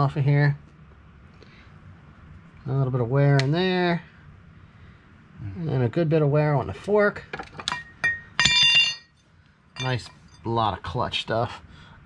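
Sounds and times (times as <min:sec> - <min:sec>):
metallic clink with ring: 0:07.7 - 0:09.1, 0:09.8 - 0:10.4.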